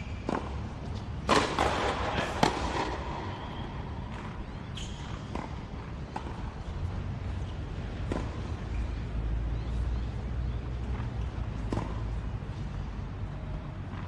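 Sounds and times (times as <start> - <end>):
tennis ball bounces: 0.0 - 12.8
tennis racquets striking ball: 0.0 - 12.8.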